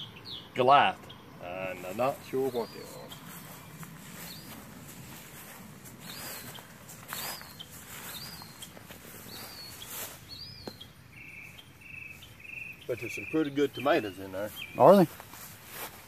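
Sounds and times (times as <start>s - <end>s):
insect high chirps: 6.0s - 14.8s.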